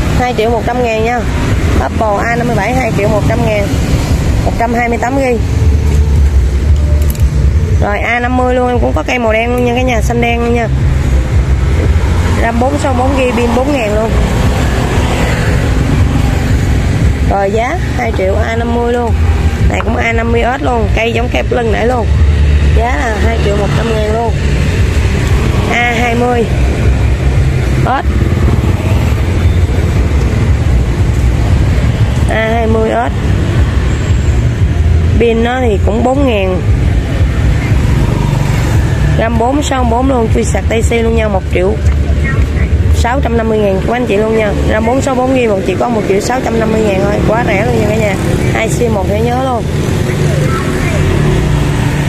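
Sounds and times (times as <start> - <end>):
low rumble of road traffic: 0.0 - 52.0
faint voices: 43.8 - 51.8.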